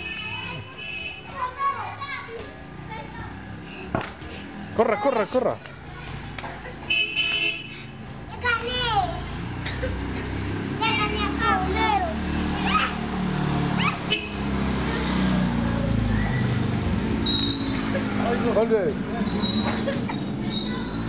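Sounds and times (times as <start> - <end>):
children shouting and squealing: 0.1 - 3.5, 8.3 - 9.4, 10.8 - 18.3, 19.2 - 21.0.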